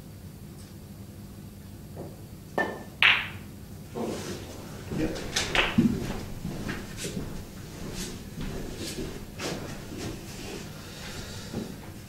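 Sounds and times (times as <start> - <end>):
balls knocking and thudding: 2.0 - 10.3
cue tip striking ball: 2.6 - 3.5, 4.1 - 6.4
balls clicking together: 3.0 - 3.4, 5.4 - 5.8.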